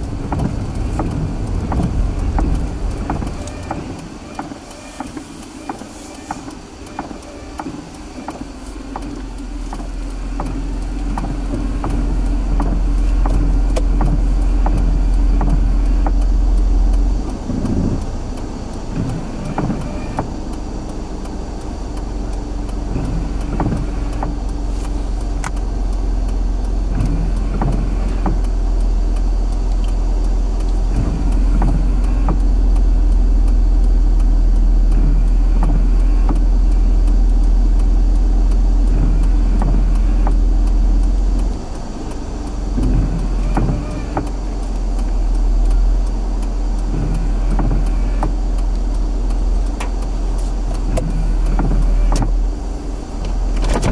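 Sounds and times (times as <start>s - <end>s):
car engine idling: 0.0s - 53.9s.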